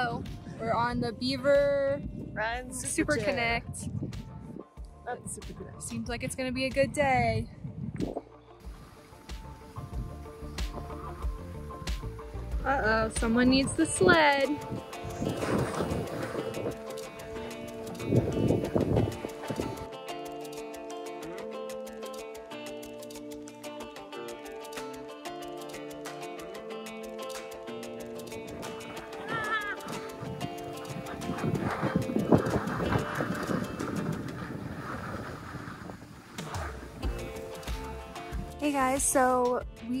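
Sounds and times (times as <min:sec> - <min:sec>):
wind buffeting microphone: 0:00.0 - 0:19.9, 0:28.4 - 0:38.6
background music with held notes: 0:00.0 - 0:34.4, 0:36.6 - 0:40.0
skis scraping on packed snow: 0:14.7 - 0:18.5, 0:29.8 - 0:38.0.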